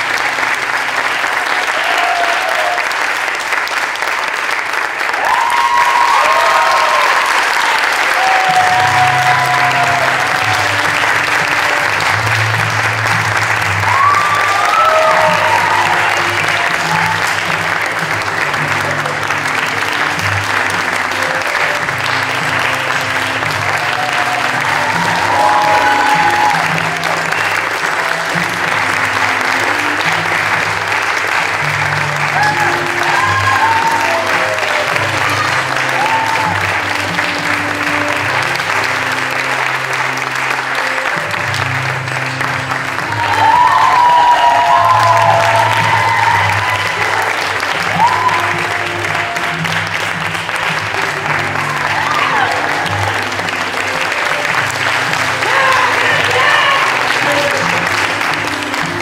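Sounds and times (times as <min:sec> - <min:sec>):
audience applauding: 0:00.0 - 0:59.0
music: 0:00.0 - 0:59.0.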